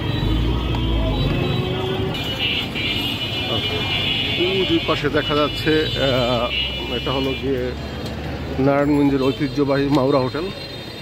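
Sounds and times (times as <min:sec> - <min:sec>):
vehicle engines running: 0:00.0 - 0:11.0
voices: 0:00.2 - 0:11.0.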